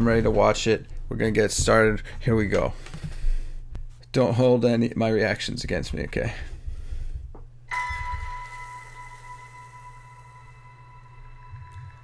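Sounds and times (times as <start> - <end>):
low hum: 6.4 - 12.0
struck bell-like tone: 7.7 - 12.0.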